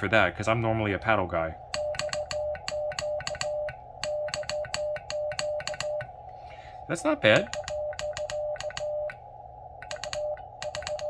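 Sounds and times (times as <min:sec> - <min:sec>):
morse code beeps: 0:01.7 - 0:06.1, 0:07.4 - 0:09.2, 0:09.8 - 0:11.0.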